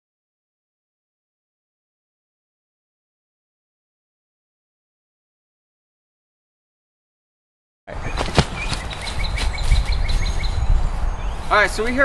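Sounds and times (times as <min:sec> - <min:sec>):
bird chirping: 0:07.9 - 0:12.0
wind rumbling on microphone: 0:07.9 - 0:12.0.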